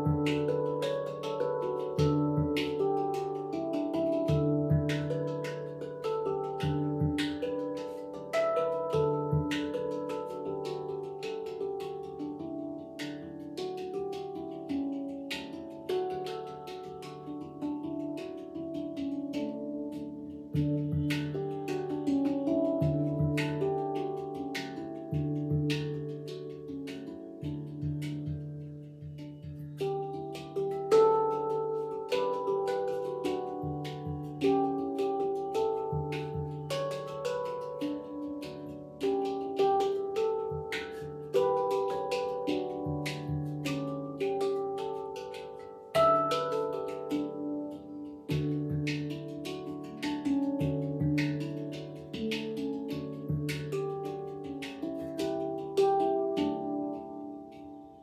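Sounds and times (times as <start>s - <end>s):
deep low handpan note: 0.0s - 58.0s
handpan melody: 0.0s - 58.0s.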